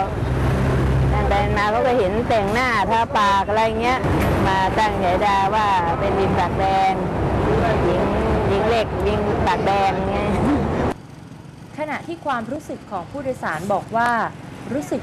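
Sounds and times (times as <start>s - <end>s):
street traffic noise: 0.0s - 15.0s
woman talking: 1.1s - 10.4s, 11.7s - 15.0s.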